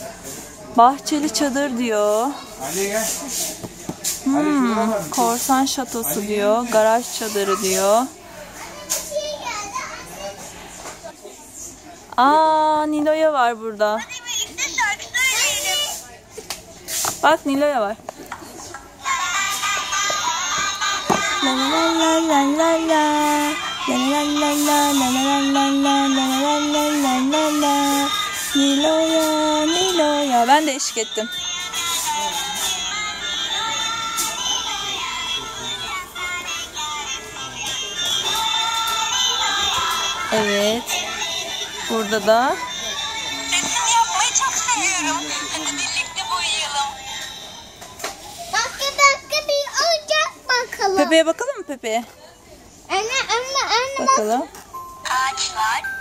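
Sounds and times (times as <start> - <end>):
toy speaker children's song: 19.0 - 48.2.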